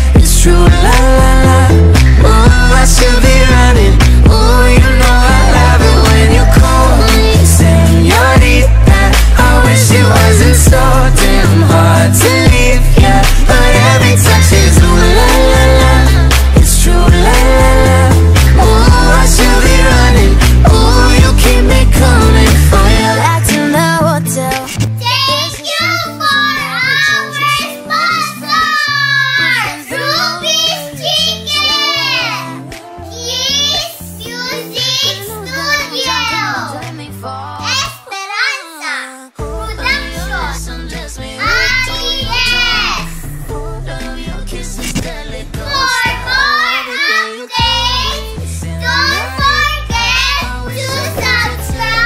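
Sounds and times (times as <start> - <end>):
pop music: 0.0 - 52.0
girl singing: 0.2 - 52.0.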